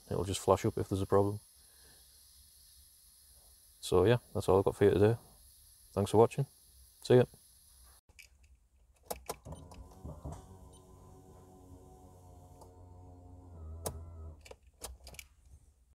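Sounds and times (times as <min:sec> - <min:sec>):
faint electric hum: 0:09.4 - 0:14.5.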